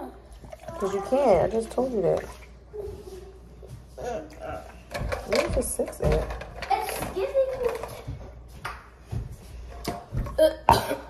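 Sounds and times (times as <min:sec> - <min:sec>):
items clicking and knocking on counter: 0:04.9 - 0:08.8.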